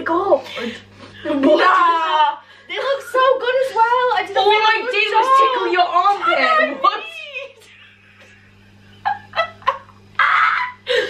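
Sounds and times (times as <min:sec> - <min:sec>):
women laughing squeals: 0:09.0 - 0:11.0.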